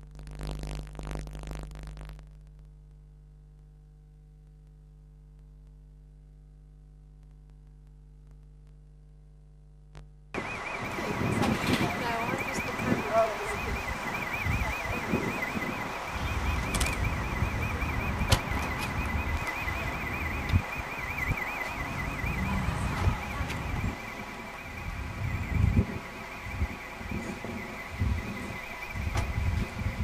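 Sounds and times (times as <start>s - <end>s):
faint warbling high whine: 10.3s - 30.0s
wind rumble on microphone: 10.8s - 30.0s.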